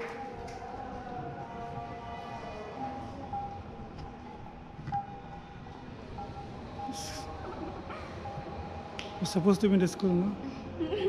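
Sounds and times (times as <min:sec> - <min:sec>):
faint hum: 0:00.0 - 0:11.0
room noise in a hall: 0:00.0 - 0:11.0.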